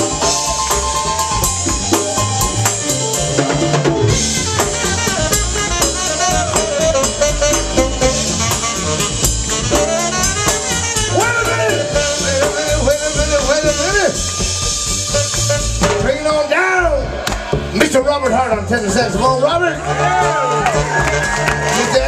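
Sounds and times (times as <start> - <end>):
trombone and saxophone lines: 0.0 - 17.2, 19.6 - 22.0
drum kit and percussion beat: 0.0 - 22.0.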